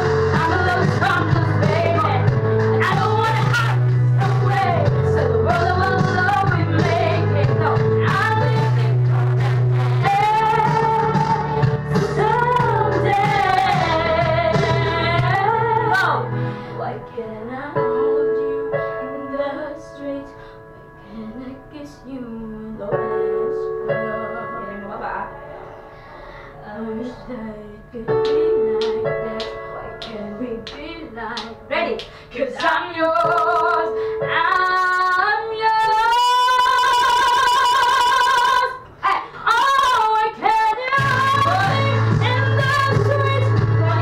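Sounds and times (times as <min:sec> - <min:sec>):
boy singing pop ballad: 0:00.0 - 0:25.2, 0:26.6 - 0:44.0
instrumental accompaniment: 0:00.0 - 0:36.7.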